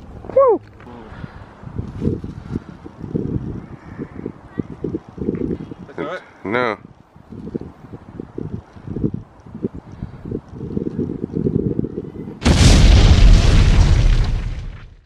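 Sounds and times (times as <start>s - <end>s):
explosion boom with deep rumble: 12.4s - 15.0s.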